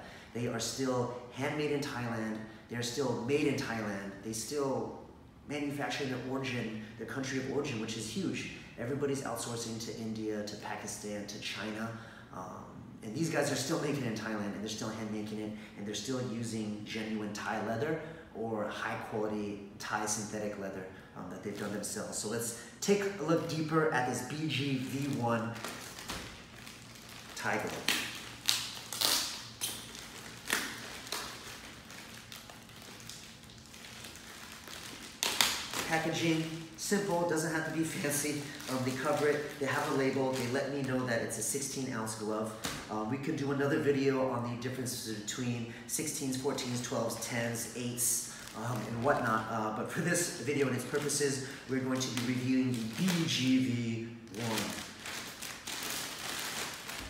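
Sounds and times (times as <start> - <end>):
plastic bag crinkling: 21.5 - 43.0, 46.6 - 57.0.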